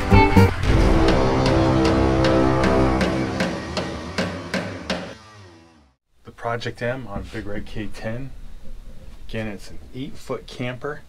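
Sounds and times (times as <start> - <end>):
final rock chord ringing: 0.0 - 5.2
rock music percussive hits: 0.0 - 5.4.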